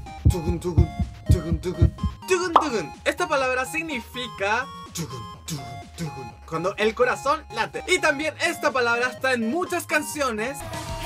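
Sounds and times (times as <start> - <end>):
heartbeat thumps: 0.0 - 2.8
background music: 0.0 - 11.0.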